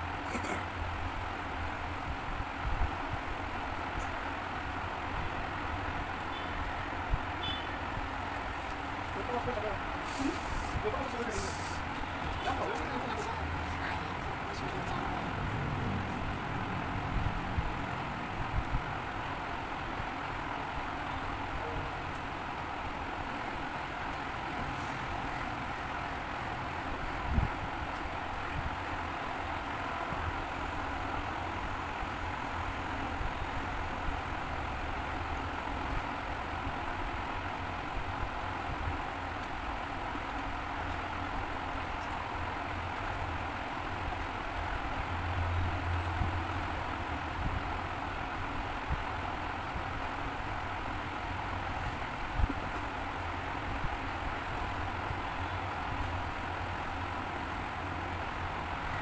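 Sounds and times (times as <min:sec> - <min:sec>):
low rumble and hiss: 0:00.0 - 0:59.0.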